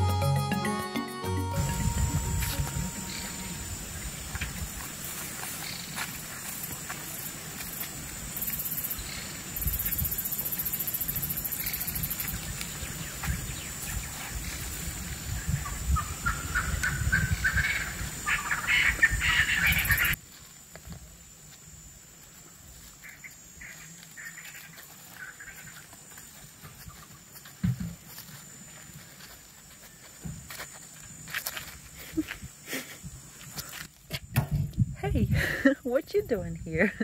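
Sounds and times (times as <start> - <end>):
wild birds calling: 15.4 - 20.2, 23.0 - 27.4.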